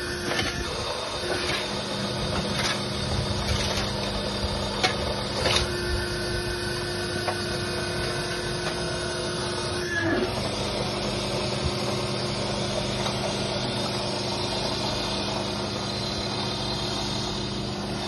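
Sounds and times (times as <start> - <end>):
high-pitched press whine: 0.0 - 18.0
machine motor humming: 0.0 - 18.0.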